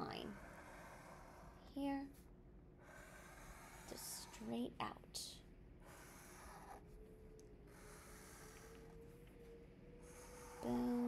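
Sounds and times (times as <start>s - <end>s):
marker scratching on paper: 0.0s - 2.0s, 2.8s - 4.6s, 5.9s - 6.9s, 7.8s - 8.8s.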